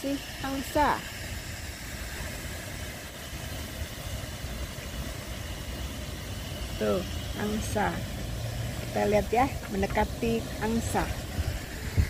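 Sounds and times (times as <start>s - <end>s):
even hiss: 0.0s - 12.0s
low rumble: 0.1s - 12.0s.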